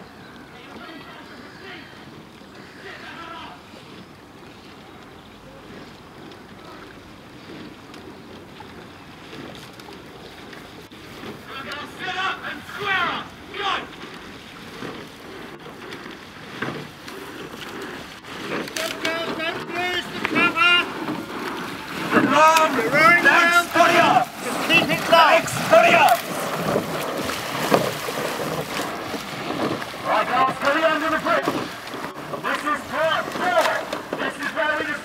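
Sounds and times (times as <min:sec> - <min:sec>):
steady outdoor hiss: 0:00.0 - 0:35.0
wind buffeting microphone: 0:03.6 - 0:35.0
person shouting calls: 0:22.3 - 0:26.2.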